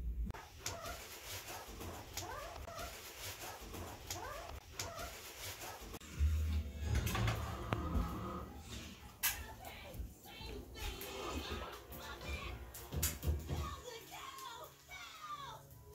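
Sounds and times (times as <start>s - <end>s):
low hum: 6.0s - 9.2s.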